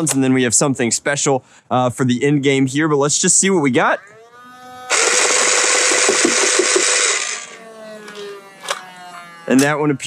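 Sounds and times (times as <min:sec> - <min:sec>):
toy blaster motor whining: 0:03.8 - 0:10.0.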